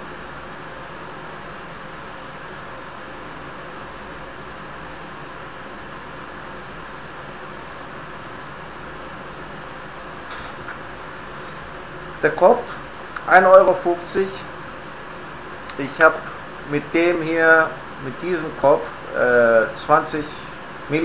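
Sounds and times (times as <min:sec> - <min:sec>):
background hiss: 0:08.4 - 0:21.0.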